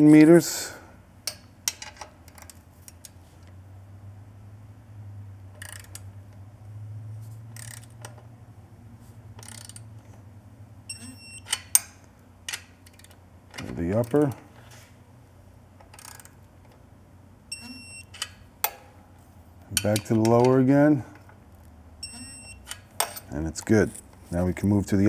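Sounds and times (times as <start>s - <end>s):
steady low hum: 0.0s - 25.0s
short high electronic beep: 10.9s - 11.5s, 22.0s - 22.6s
hand tools clicking and rattling: 19.6s - 20.6s.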